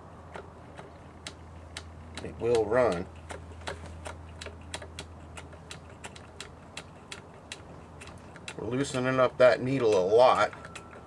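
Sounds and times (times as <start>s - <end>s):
rapid light clicking: 0.3s - 11.0s.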